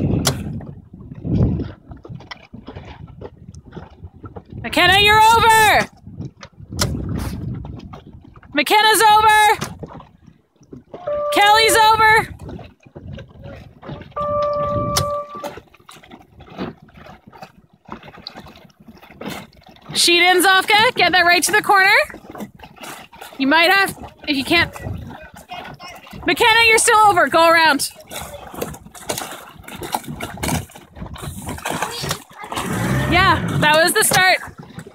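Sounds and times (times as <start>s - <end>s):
wind noise on microphone: 0.0s - 15.6s, 23.7s - 34.9s
water noise: 0.0s - 34.9s
horn blast: 11.0s - 12.1s, 14.1s - 15.6s.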